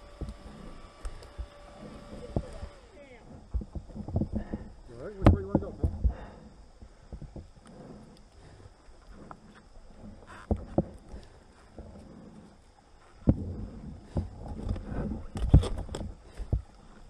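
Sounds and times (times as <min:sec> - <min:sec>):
rocks knocking and clunking: 0:00.0 - 0:06.4, 0:09.1 - 0:12.4, 0:13.2 - 0:17.0
steady hum: 0:00.0 - 0:17.0.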